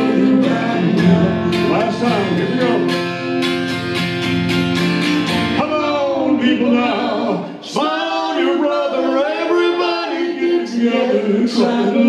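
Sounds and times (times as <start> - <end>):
man singing: 0.0 - 3.4, 5.5 - 12.0
acoustic guitars strummed: 0.0 - 7.9.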